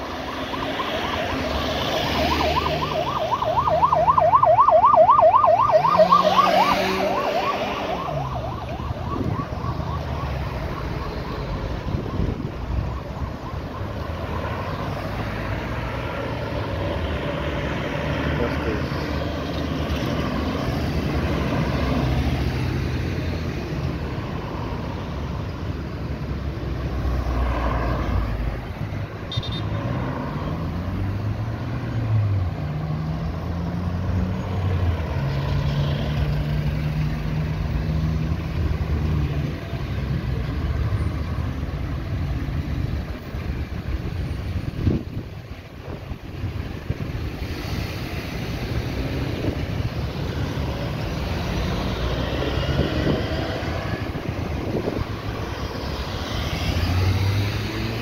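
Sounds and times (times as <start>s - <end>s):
cars driving past: 0.0s - 58.0s.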